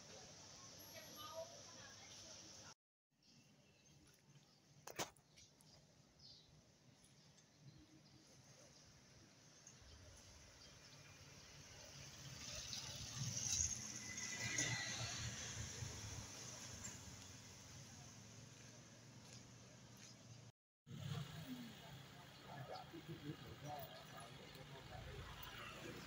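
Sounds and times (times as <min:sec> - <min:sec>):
quiet street ambience: 0:00.0 - 0:26.0
vehicle passing: 0:12.3 - 0:19.3.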